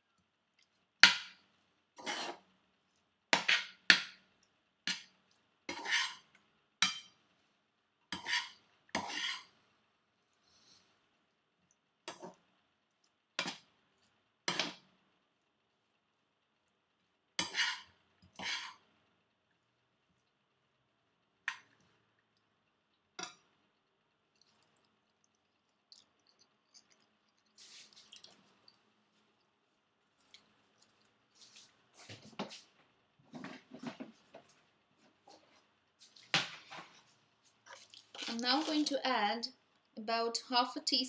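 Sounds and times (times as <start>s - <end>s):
metal spoon scraping iron skillet: 2.0s - 2.4s, 5.7s - 7.1s, 8.1s - 9.5s, 17.4s - 18.8s.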